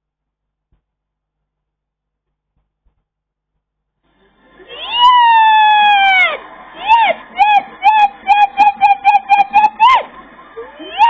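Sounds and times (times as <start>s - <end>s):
woman screaming with joy: 4.7s - 10.1s, 10.7s - 11.0s.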